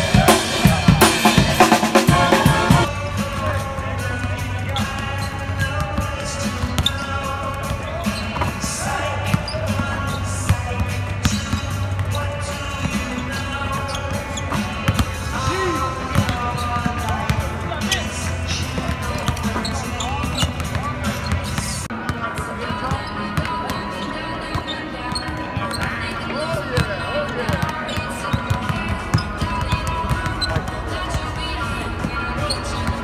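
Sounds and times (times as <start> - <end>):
music playing: 0.0 - 33.0
basketballs bouncing on hardwood: 13.9 - 15.2, 16.0 - 17.5, 18.8 - 21.7, 27.5 - 31.2.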